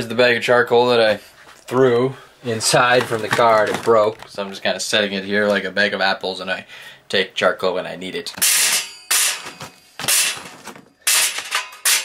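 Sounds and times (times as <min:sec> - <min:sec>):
charcoal clattering in metal: 0:02.7 - 0:04.4, 0:08.4 - 0:12.0.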